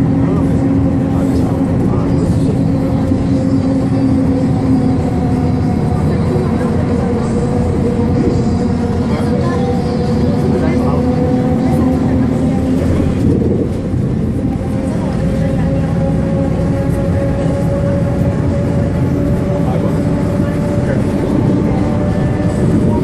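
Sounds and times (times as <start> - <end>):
bus engine drone: 0.0 - 23.0.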